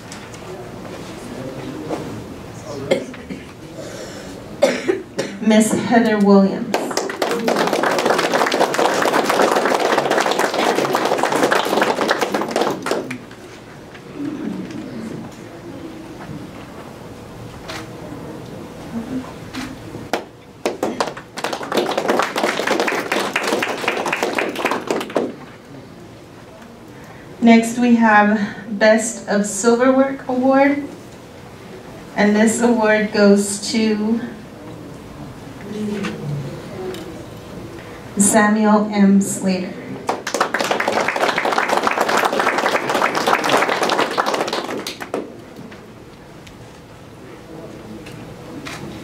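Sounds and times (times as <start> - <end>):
small audience clapping: 6.7 - 14.8, 20.1 - 25.7, 40.0 - 45.8.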